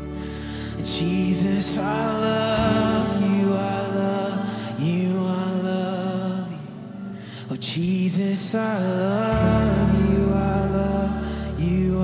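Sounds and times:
worship band music: 0.0 - 12.0.

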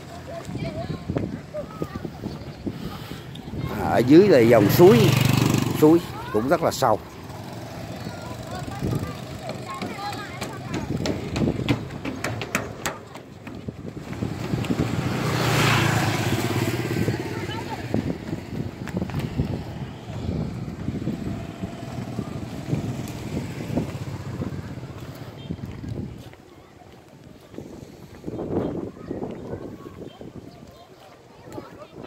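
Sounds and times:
motorbike passing: 0.0 - 26.2.

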